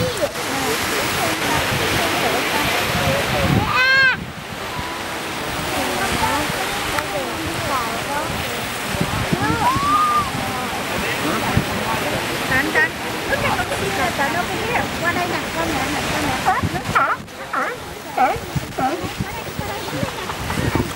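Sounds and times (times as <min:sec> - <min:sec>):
people talking: 0:00.0 - 0:20.9
surf washing against rocks: 0:00.0 - 0:20.9
wind: 0:00.0 - 0:20.9.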